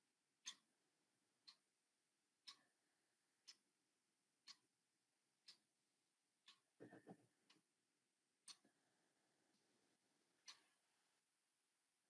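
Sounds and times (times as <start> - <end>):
clock ticking: 0.4 - 0.8, 1.4 - 1.8, 2.4 - 3.8, 4.4 - 4.8, 5.4 - 5.8, 6.4 - 7.8, 8.4 - 8.8, 10.4 - 11.0.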